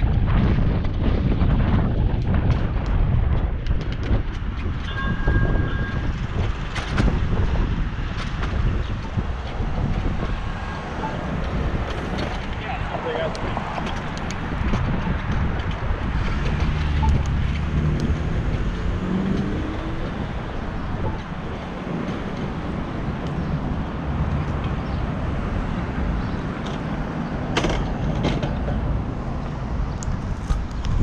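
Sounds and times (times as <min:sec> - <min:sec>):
road traffic: 0:00.0 - 0:31.0
wind buffeting microphone: 0:00.0 - 0:31.0.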